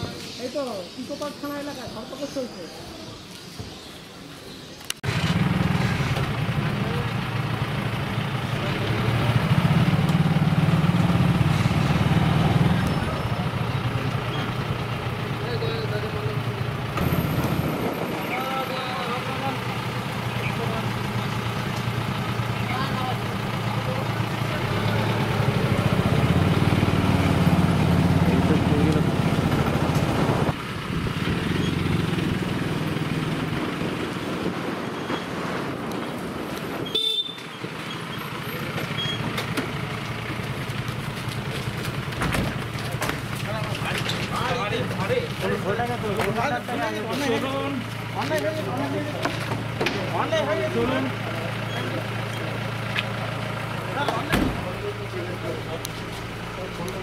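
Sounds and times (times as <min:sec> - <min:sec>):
jeep engine running: 0:05.0 - 0:57.0
people talking: 0:15.2 - 0:16.6, 0:18.0 - 0:21.6, 0:22.5 - 0:25.8, 0:28.2 - 0:29.2, 0:42.7 - 0:52.7, 0:53.8 - 0:57.0.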